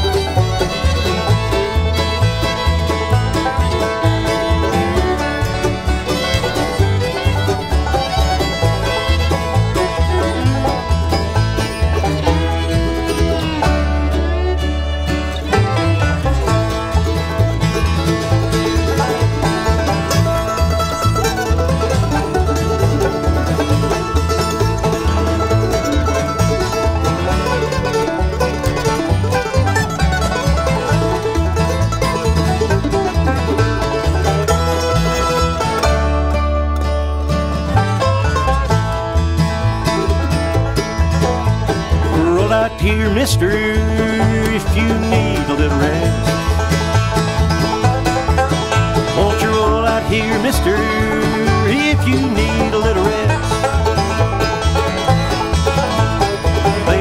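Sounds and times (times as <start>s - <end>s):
acoustic guitar: 0.0s - 57.0s
banjo: 0.0s - 57.0s
fiddle: 0.0s - 57.0s
mandolin solo: 0.0s - 57.0s
upright bass: 0.0s - 57.0s.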